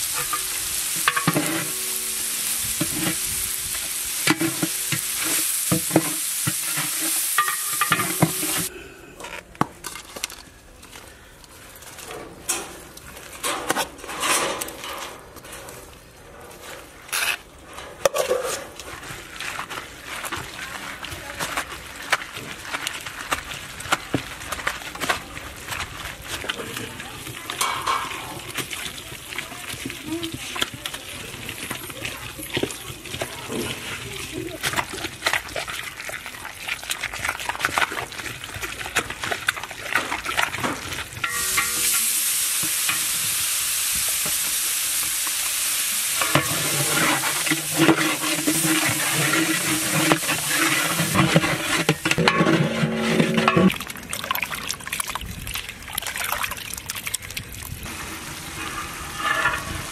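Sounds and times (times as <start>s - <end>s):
frying sizzle: 0.0s - 8.7s, 18.1s - 55.8s, 57.2s - 59.9s
stone roller grinding on slab: 0.0s - 8.7s, 46.2s - 53.9s, 57.9s - 59.9s.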